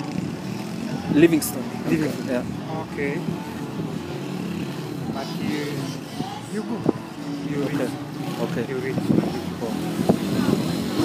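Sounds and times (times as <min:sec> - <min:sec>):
men talking indistinctly: 0:00.3 - 0:10.5.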